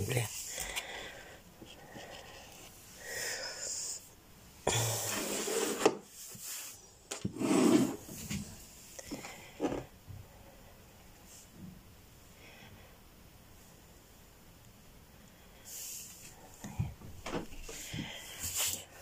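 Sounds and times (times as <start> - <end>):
person breathing close to microphone: 0.4 - 4.1, 15.2 - 19.0
rubbing and handling noises: 17.2 - 19.0.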